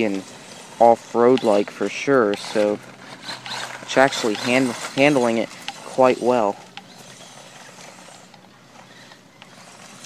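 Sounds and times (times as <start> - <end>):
rc car motor and tyres: 0.0 - 10.0.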